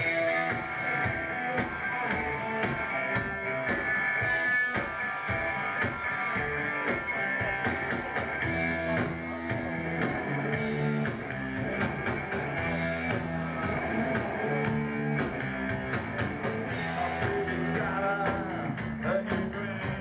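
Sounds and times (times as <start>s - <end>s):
drum kit hits: 0.0s - 19.4s
distorted electric guitars: 0.0s - 20.0s
punk rock band playing: 0.0s - 20.0s.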